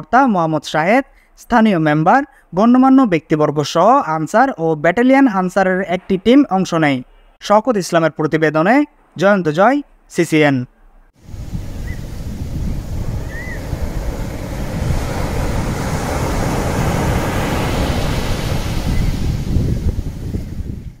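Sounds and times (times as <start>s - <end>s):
ocean surf rushing: 11.2s - 21.0s.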